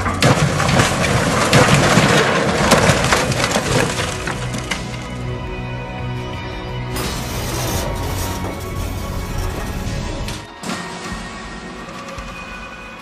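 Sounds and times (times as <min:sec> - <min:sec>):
clatter of breaking impacts: 0:00.0 - 0:05.3
background music: 0:00.0 - 0:13.0.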